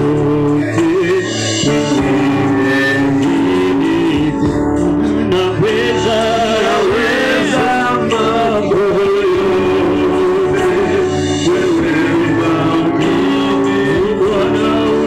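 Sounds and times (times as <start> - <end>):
gospel singing with instruments: 0.0 - 15.0.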